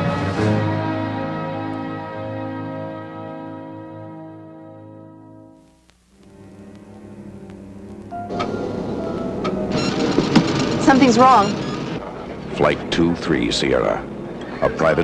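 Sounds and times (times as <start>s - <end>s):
sustained tones: 6.2s - 14.9s
orchestral chord: 6.4s - 14.9s.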